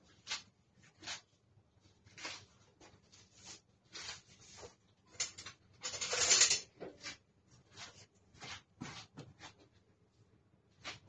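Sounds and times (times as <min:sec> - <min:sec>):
scraping and rustling handling noises: 0:00.0 - 0:09.9.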